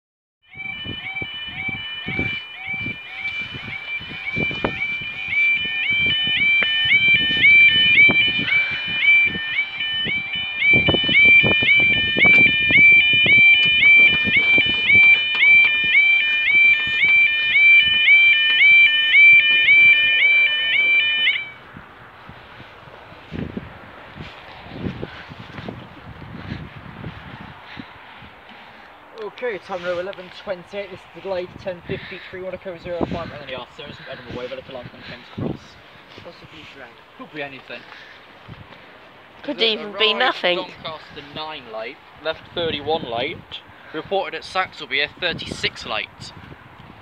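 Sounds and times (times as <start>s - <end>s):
level crossing alarm: 0.4s - 21.6s
lower pulsing tone: 0.5s - 21.6s
microphone handling noise: 1.6s - 20.4s.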